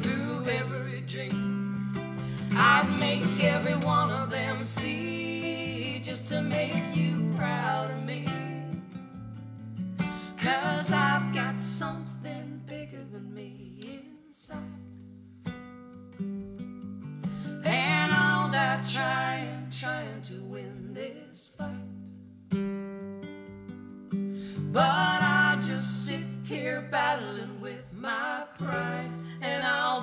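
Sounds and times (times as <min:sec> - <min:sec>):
man and woman singing: 0:00.0 - 0:01.6, 0:02.2 - 0:09.0, 0:10.2 - 0:14.8, 0:17.5 - 0:22.0, 0:24.6 - 0:30.0
acoustic guitar strumming: 0:00.0 - 0:11.6, 0:15.0 - 0:19.4, 0:21.9 - 0:26.9.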